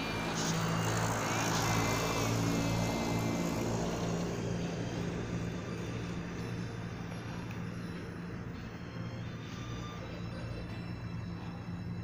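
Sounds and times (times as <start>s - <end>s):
passing vehicle: 0.0s - 12.0s
steady low hum: 0.0s - 12.0s
faint wavering high tones: 4.6s - 12.0s.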